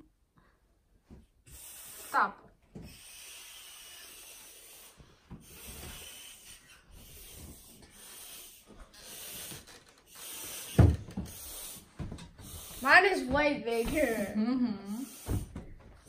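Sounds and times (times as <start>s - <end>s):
breathy puffs blowing up balloon: 1.3s - 16.0s.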